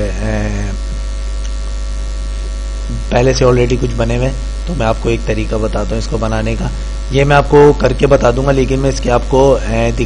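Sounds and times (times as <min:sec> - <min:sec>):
electrical mains hum: 0:00.0 - 0:10.0
faint recording hiss: 0:00.0 - 0:10.0.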